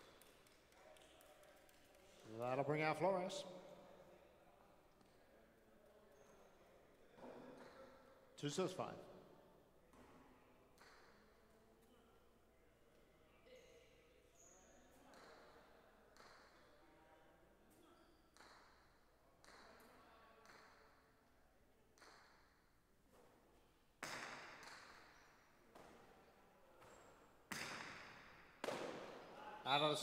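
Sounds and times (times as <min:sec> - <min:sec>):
ball hitting court walls: 0:23.1 - 0:26.2, 0:26.8 - 0:29.3.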